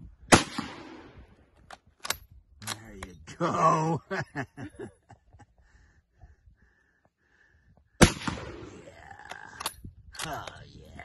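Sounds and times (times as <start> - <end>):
rifle shot with echo: 0.3 - 1.3, 8.0 - 8.8.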